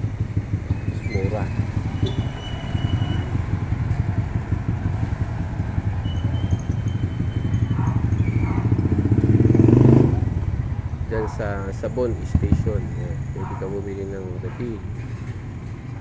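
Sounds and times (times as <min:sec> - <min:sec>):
small motorcycle engines rumbling: 0:00.0 - 0:16.0.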